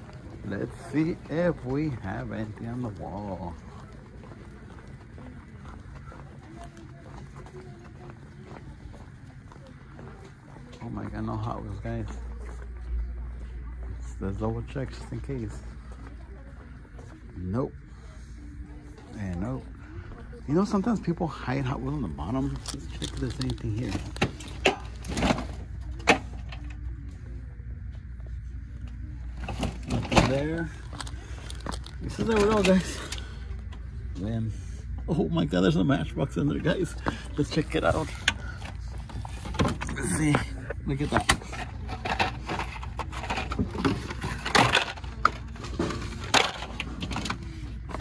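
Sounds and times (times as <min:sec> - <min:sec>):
faint background voices: 0:00.0 - 0:48.0.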